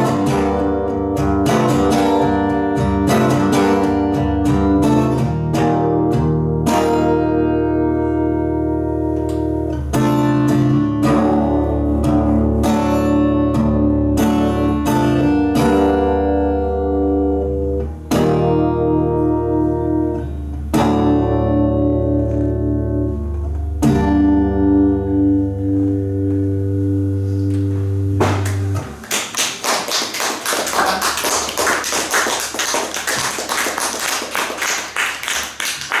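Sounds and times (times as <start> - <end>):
strummed electric guitar chords: 0.0 - 29.0
audience applause: 29.0 - 36.0.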